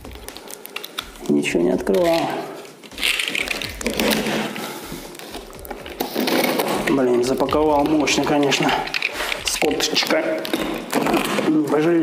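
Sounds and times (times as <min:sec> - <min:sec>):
blade scraping through packing tape: 0:00.0 - 0:11.6
cardboard flaps rustling: 0:00.0 - 0:12.0.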